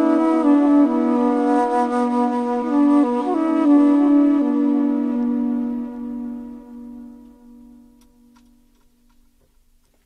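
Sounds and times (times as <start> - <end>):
slow layered flute music: 0.0 - 8.4.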